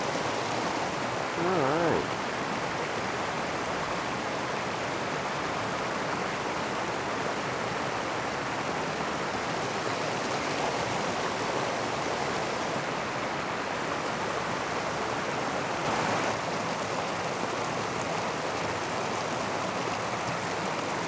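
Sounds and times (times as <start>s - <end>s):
river water rushing over slab: 0.0s - 21.0s.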